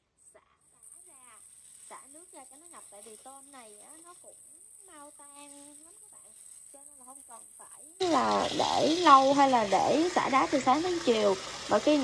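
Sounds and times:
water running into a basin: 0.7s - 12.0s.

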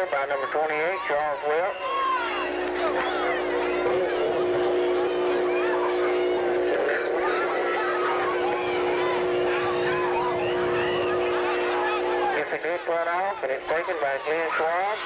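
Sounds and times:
crowd yelling and cheering: 0.0s - 15.0s
hum of held tones: 0.0s - 15.0s.

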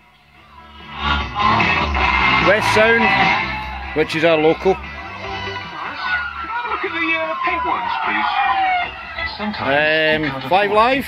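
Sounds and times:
radio music through crystal set: 0.0s - 11.0s.

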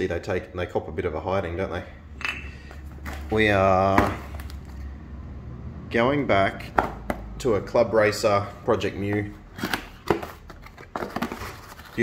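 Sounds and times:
rustling through packing: 9.0s - 12.0s
cardboard box opening: 9.1s - 12.0s.

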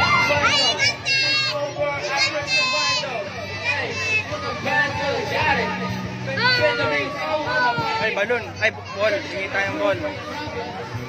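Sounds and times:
children shouting and squealing: 0.0s - 11.0s.

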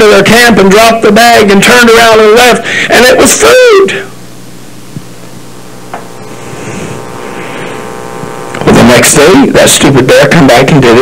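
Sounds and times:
recording hum and hiss: 0.0s - 11.0s.

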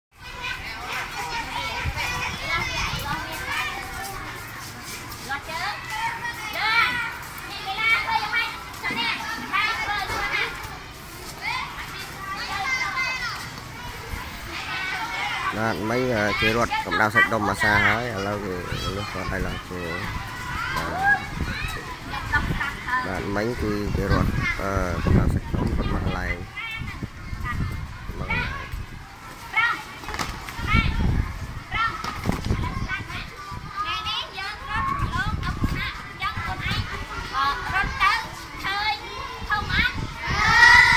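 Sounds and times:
children's high-pitched shouts: 0.2s - 4.7s, 5.5s - 17.0s, 17.6s - 40.9s
children chattering: 0.2s - 40.9s.

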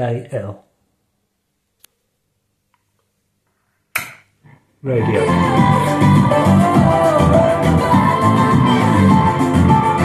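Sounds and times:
music through speakers: 5.0s - 10.0s.

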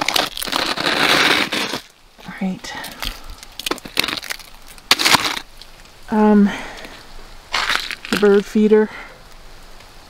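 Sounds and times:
ice cracking and clinking: 0.0s - 1.9s, 2.9s - 5.7s, 7.5s - 8.6s.

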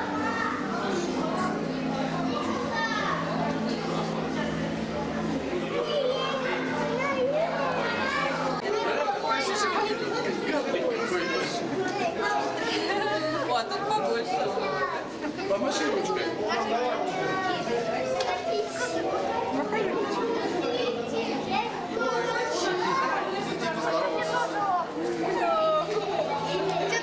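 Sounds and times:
crowd chatter: 0.0s - 27.0s.

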